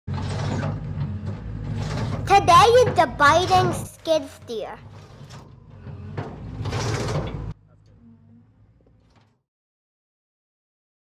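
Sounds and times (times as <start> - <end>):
mechanical rattle: 4.8 - 7.6.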